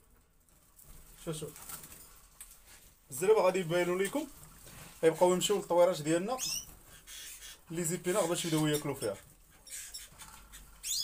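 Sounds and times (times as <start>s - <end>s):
canaries chirping: 5.0s - 11.0s.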